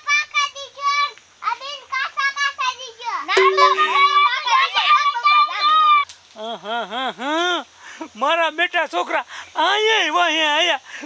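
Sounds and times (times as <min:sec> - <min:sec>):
steady low tone: 0:03.4 - 0:04.6.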